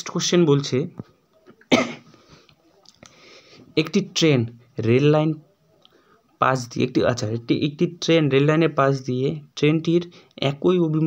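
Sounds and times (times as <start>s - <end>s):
person coughing: 1.7s - 2.2s.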